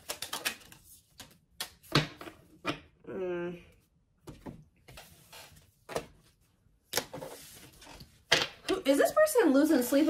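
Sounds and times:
cards clicking and snapping: 0:00.0 - 0:01.9
person humming: 0:03.0 - 0:03.8.

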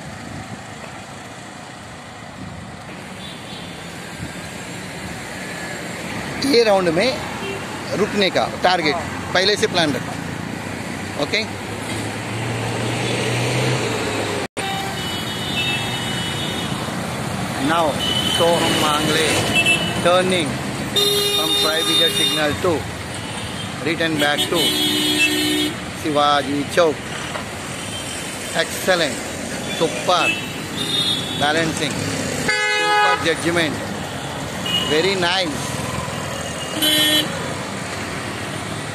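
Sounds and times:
car and motorbike engines: 0:00.0 - 0:38.9
street traffic: 0:00.0 - 0:38.9
vehicle horn toot: 0:14.6 - 0:16.8, 0:21.0 - 0:22.5, 0:23.4 - 0:25.8, 0:32.5 - 0:33.3, 0:34.6 - 0:35.1, 0:36.5 - 0:37.3.

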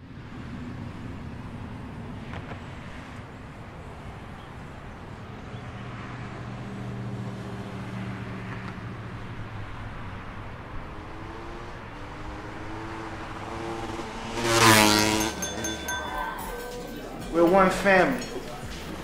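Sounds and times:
traffic noise: 0:00.0 - 0:19.0
vehicle engine humming: 0:00.0 - 0:19.0
vehicle passing whoosh: 0:05.7 - 0:17.5.

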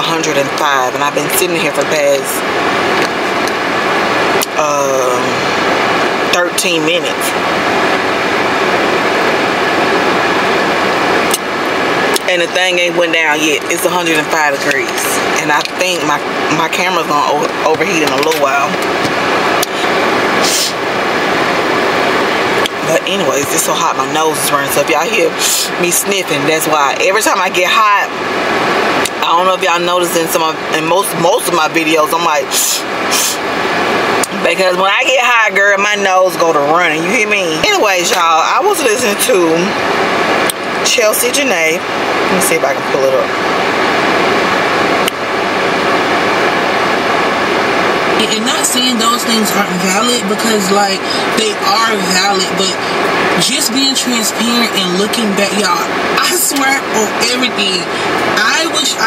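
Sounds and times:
car air conditioning blower: 0:01.0 - 0:26.4.

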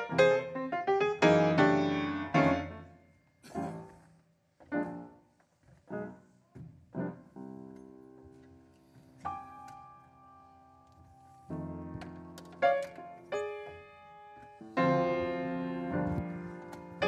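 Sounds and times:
slow solo piano chords: 0:00.0 - 0:04.0, 0:05.8 - 0:17.0.

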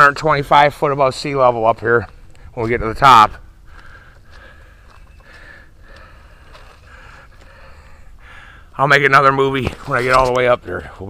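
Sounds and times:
footsteps on gravel: 0:01.7 - 0:07.8.

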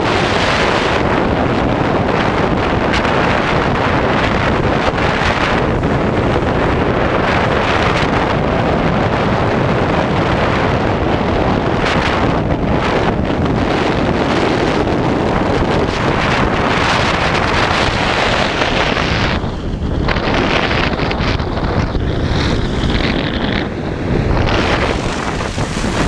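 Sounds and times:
wind rushing over microphone: 0:00.0 - 0:26.0
skis sliding on snow: 0:24.4 - 0:26.0.

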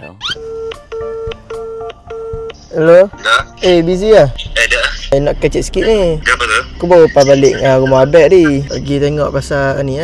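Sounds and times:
phone calling tone beeps: 0:00.3 - 0:02.6.

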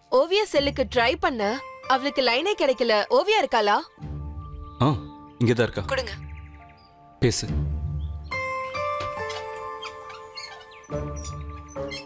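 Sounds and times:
background music held notes: 0:01.6 - 0:12.0
high chirping sounds: 0:07.9 - 0:12.0.

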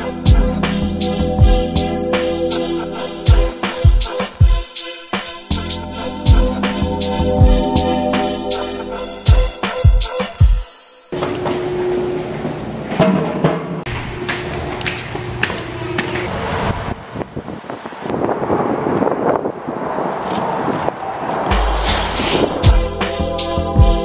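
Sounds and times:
background music: 0:00.0 - 0:11.1, 0:21.5 - 0:24.0
skateboard wheels rolling on concrete: 0:13.9 - 0:22.7.

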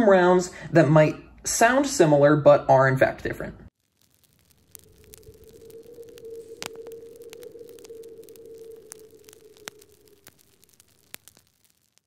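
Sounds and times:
clicks and crackles: 0:03.7 - 0:12.0
steady held tone: 0:03.8 - 0:12.0.

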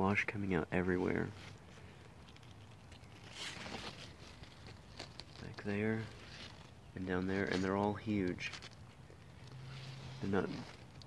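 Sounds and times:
leaves rustling: 0:00.1 - 0:11.0.

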